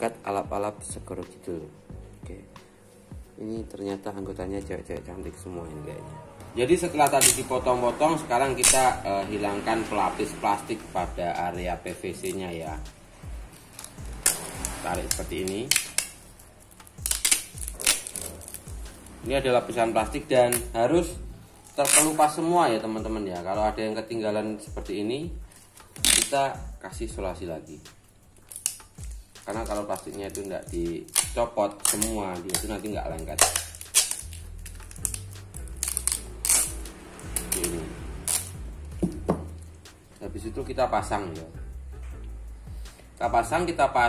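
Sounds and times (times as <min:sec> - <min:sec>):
background music with bass: 0:00.0 - 0:44.0
packing tape ripping: 0:06.8 - 0:09.0, 0:13.5 - 0:20.9, 0:21.6 - 0:22.5, 0:25.5 - 0:26.5, 0:28.4 - 0:39.7.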